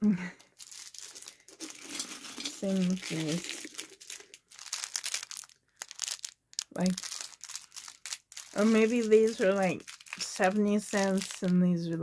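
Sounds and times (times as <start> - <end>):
plastic bags crinkling: 0.3 - 12.0.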